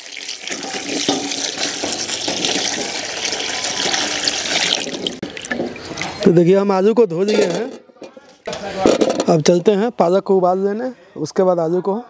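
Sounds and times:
water pouring into a steel bowl: 0.0 - 6.3.

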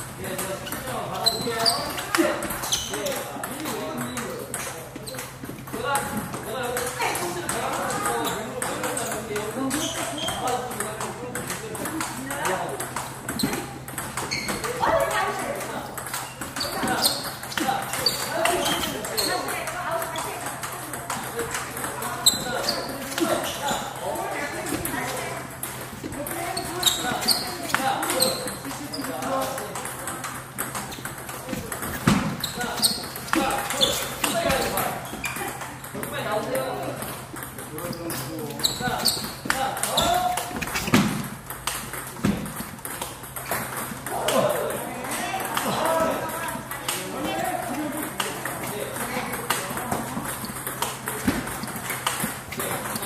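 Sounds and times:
people talking: 0.2 - 41.0, 44.0 - 53.0
table tennis ball clicks: 39.8 - 44.4.

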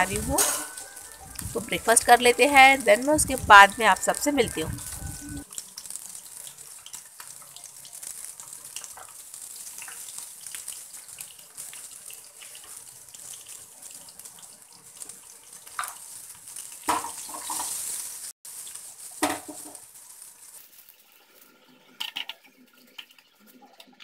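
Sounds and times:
hot oil sizzling in pan: 0.0 - 24.0
small crackles: 0.0 - 24.0
metal ladle clattering against pan: 0.3 - 0.8.

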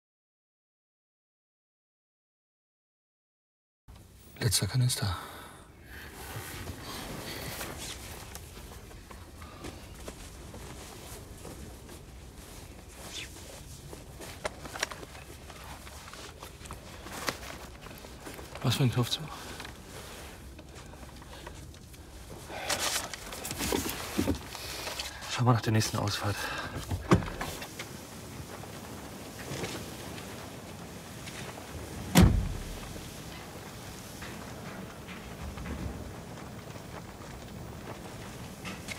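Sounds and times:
low background noise: 3.9 - 38.9
car cabin rumble: 32.0 - 33.1
loud sudden thump: 32.1 - 32.8.

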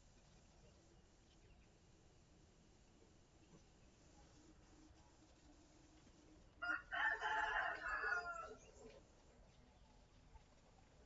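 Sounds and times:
rooster crowing: 6.6 - 8.6.

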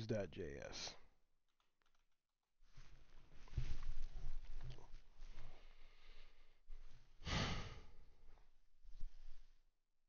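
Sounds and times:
light breath: 4.8 - 9.6.

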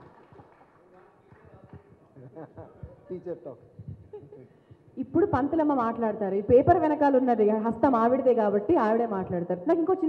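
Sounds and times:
microphone handling thumps: 3.8 - 4.2.

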